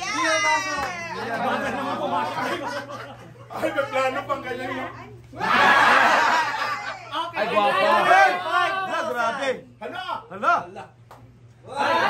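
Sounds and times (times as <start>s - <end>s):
group of people laughing: 1.1s - 4.1s, 5.4s - 7.2s.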